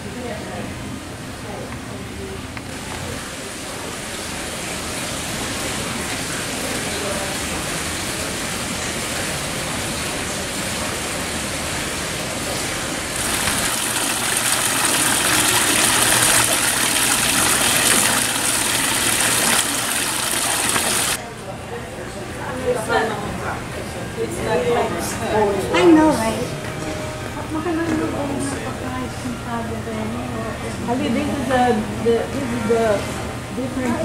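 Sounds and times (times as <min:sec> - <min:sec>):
fountain water splashing: 0:02.8 - 0:21.2.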